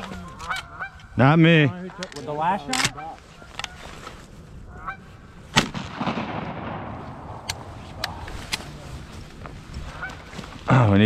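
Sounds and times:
dry grass rustling: 0.0 - 11.0.

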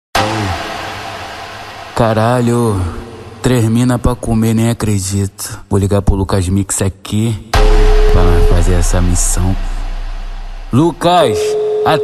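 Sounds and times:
hissy noise tail: 0.2 - 4.2, 7.6 - 11.2
low tone bending downward: 7.6 - 11.2.

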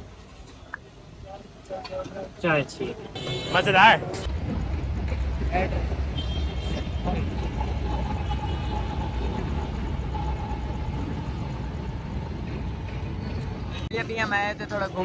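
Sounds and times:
street traffic: 0.0 - 15.0
metro train rumbling overhead: 6.9 - 14.8.

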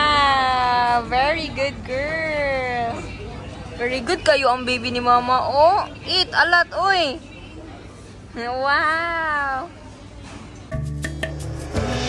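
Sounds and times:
background music: 10.7 - 12.0.

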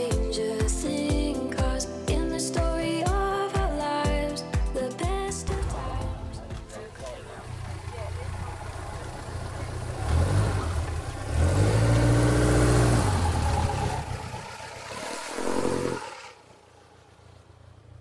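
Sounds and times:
car engine revving: 5.5 - 18.0.

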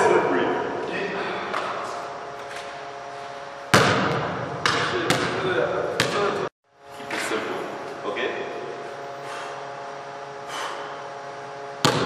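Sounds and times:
basketball banging on hoop: 3.7 - 6.3.

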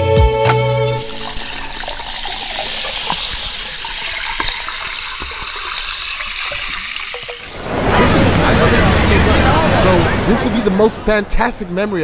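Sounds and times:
ice crackling: 0.9 - 7.6
liquid poured into a glass: 0.9 - 7.6.

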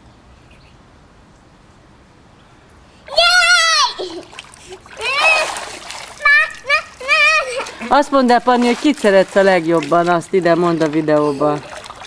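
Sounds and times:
child squealing: 3.1 - 4.3, 5.0 - 5.6, 6.2 - 7.8
water splashing: 3.1 - 12.0.

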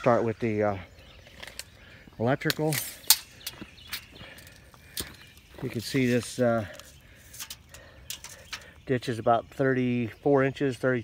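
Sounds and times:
footsteps crunching on dirt: 0.7 - 7.6.

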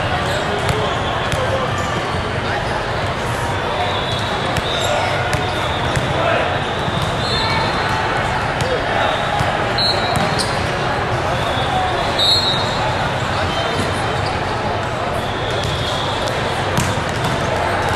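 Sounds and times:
distant overlapping voices: 0.0 - 17.9
volleyballs thudding: 16.7 - 17.9.

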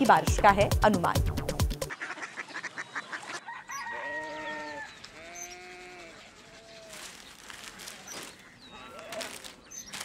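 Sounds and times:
rooster crowing: 3.4 - 5.0.

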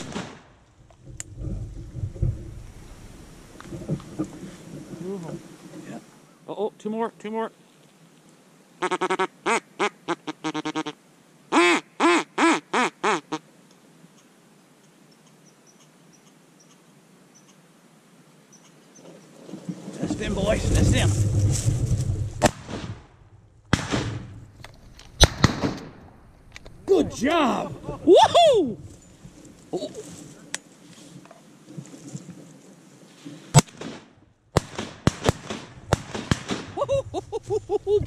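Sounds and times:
shotgun shots: 0.0 - 0.6, 22.4 - 24.3, 25.2 - 26.0, 33.6 - 36.8
rustling: 0.0 - 6.4, 18.6 - 22.9, 23.7 - 34.1, 35.3 - 38.0
duck quacks: 8.8 - 13.4.

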